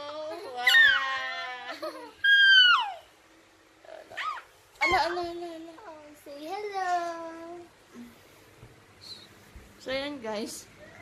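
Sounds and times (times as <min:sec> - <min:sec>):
baby squealing: 0:02.2 - 0:03.1, 0:04.2 - 0:05.1.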